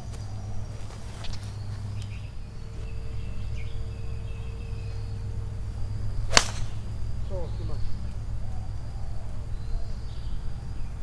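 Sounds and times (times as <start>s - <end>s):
low background rumble: 0.0s - 11.0s
golf club striking ball: 6.3s - 7.0s.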